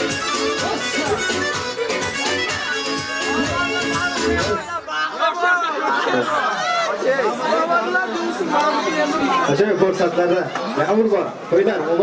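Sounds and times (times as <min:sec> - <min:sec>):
men chattering: 0:00.0 - 0:12.0.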